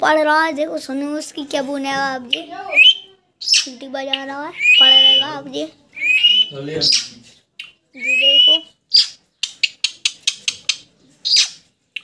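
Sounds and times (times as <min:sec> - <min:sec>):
parakeet squawking: 0:02.3 - 0:07.2, 0:08.0 - 0:11.7
parakeet whistling: 0:02.7 - 0:03.7, 0:04.6 - 0:05.4, 0:06.0 - 0:07.2, 0:08.0 - 0:09.8.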